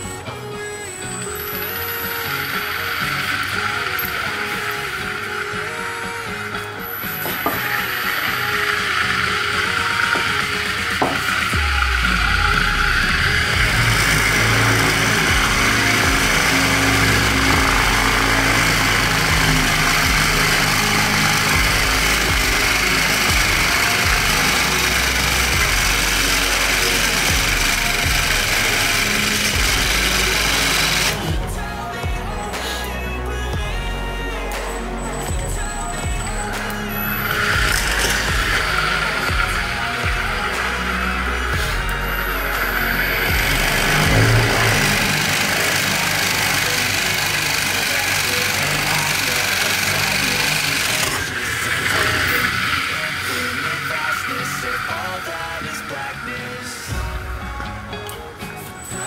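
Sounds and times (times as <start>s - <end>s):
background music: 0.0s - 59.0s.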